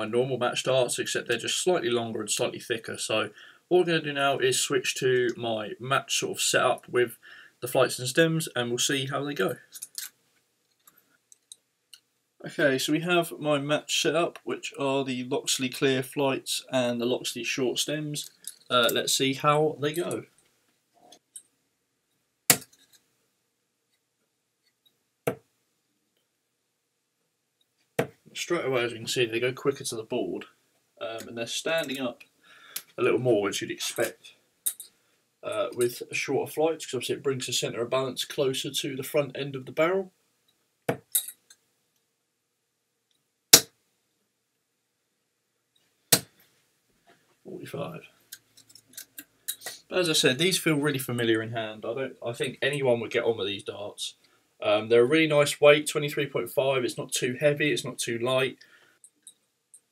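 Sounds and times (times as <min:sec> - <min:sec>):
darts clicking and tapping: 0:22.5 - 0:22.9, 0:25.2 - 0:25.5, 0:43.5 - 0:43.8.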